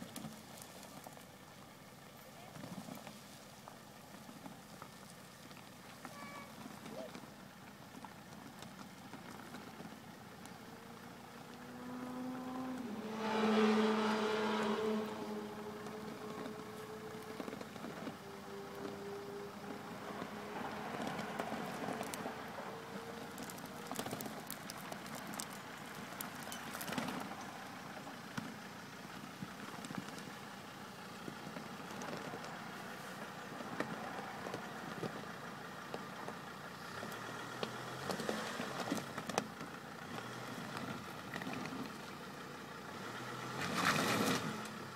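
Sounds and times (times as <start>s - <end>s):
tyres crunching over gravel: 0.0s - 11.8s, 12.7s - 44.9s
stones clicking under tyres: 0.0s - 11.9s, 14.6s - 44.9s
diesel car engine running: 0.0s - 44.9s.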